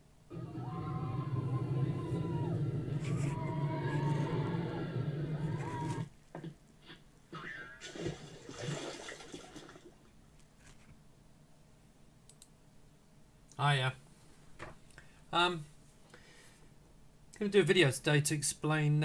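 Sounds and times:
low rumble with gliding tones: 0.3 - 6.1.

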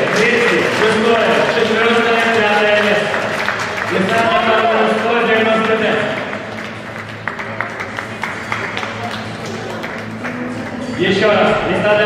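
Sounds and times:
audience clapping: 0.0 - 11.0
quiet background music: 0.0 - 12.0.

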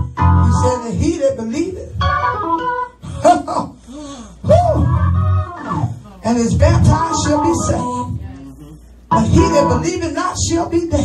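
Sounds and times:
organ chords: 0.0 - 3.6, 4.5 - 8.2, 9.0 - 10.7
woman calling out into microphone: 7.7 - 10.0.

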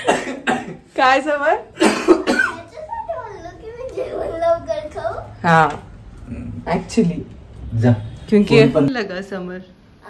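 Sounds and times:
person coughing: 0.0 - 0.8, 1.8 - 2.6.

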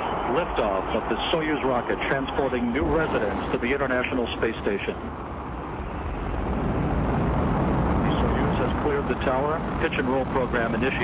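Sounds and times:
rocket engines deep rumble: 0.0 - 11.0.

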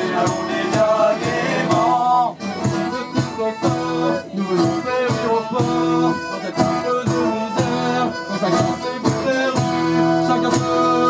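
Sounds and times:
accordion: 0.0 - 11.0
acoustic guitars: 0.0 - 11.0
steady percussive beat: 0.0 - 11.0.

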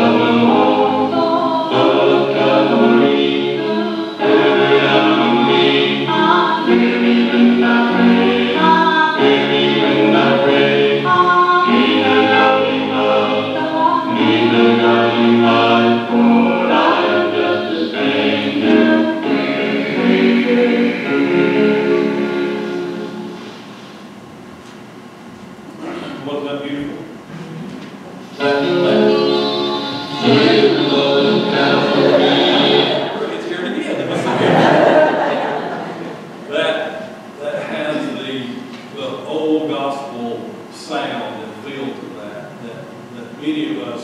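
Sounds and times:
choir singing gospel song: 0.0 - 23.9, 28.3 - 42.0.

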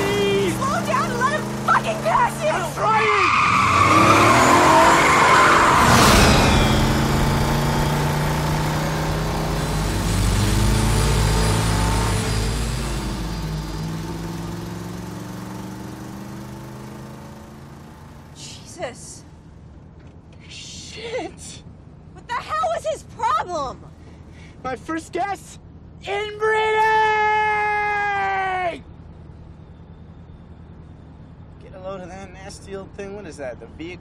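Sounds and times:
truck engine passing: 0.0 - 18.4
sudden loud burst: 5.8 - 8.4.

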